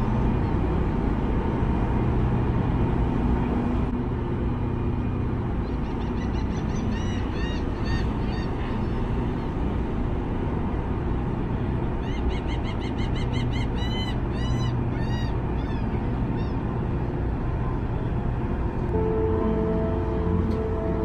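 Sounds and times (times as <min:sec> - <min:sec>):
ferry engines rumbling: 0:00.0 - 0:21.0
gulls calling: 0:05.6 - 0:09.8, 0:11.9 - 0:16.9.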